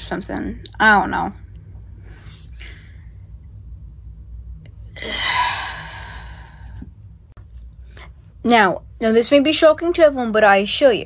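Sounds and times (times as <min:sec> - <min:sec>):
person sighing: 0:05.0 - 0:06.8.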